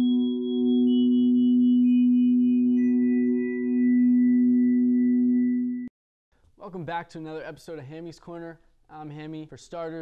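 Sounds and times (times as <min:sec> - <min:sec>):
sustained ringing tone: 0:00.0 - 0:05.9.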